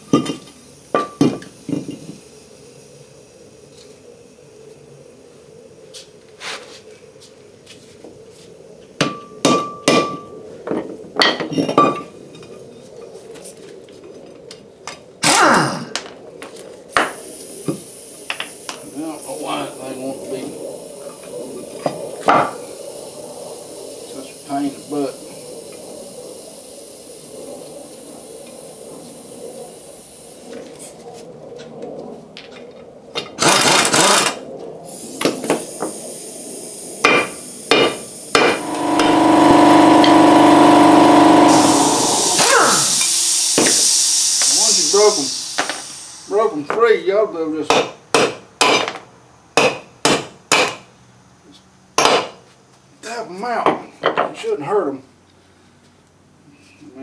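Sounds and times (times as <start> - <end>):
power tool running: 33.4 - 34.4, 38.3 - 46.4
sledgehammer striking metal: 47.7 - 49.0.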